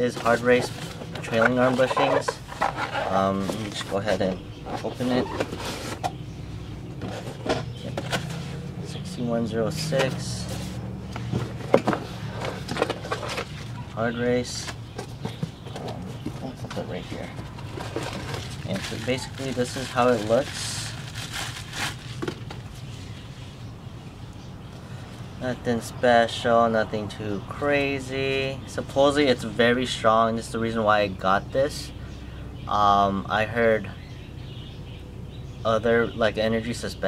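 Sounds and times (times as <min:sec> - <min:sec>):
steady low hum: 0:00.0 - 0:36.6
bubble wrap crinkling: 0:17.4 - 0:22.8.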